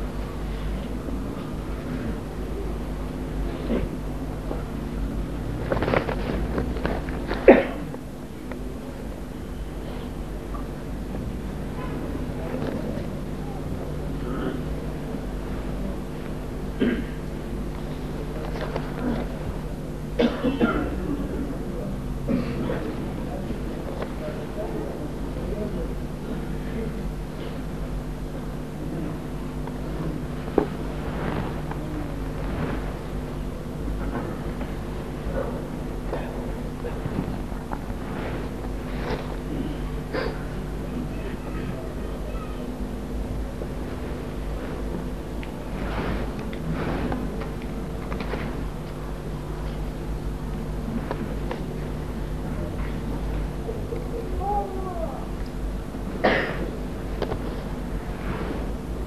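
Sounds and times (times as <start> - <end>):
steady hum: 0.0 - 59.0
low murmuring: 0.3 - 43.6, 44.2 - 56.9
people coughing: 3.5 - 4.1, 7.3 - 8.0, 14.2 - 14.8, 16.7 - 17.3, 20.1 - 21.5, 22.2 - 23.1, 35.3 - 37.2, 38.9 - 41.7, 56.2 - 56.8.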